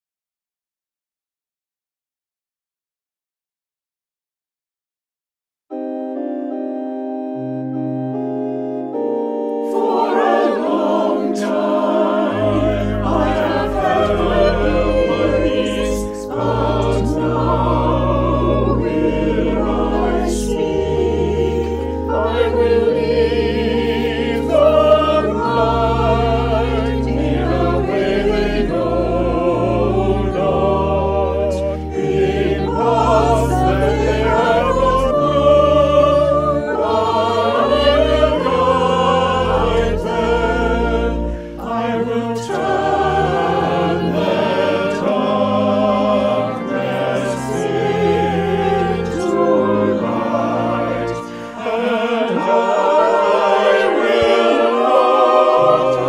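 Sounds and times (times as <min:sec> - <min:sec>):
organ: 0:05.7 - 0:56.0
choir singing: 0:07.2 - 0:56.0.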